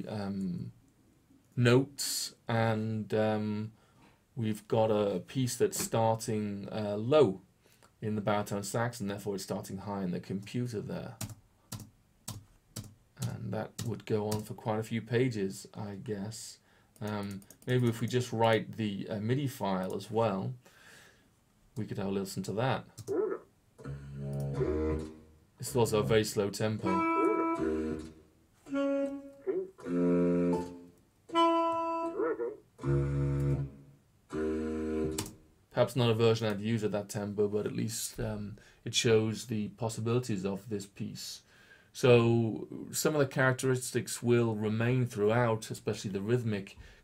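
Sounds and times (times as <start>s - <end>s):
computer keyboard keystrokes: 11.2s - 14.4s
synthesizer sustained notes: 23.8s - 35.2s.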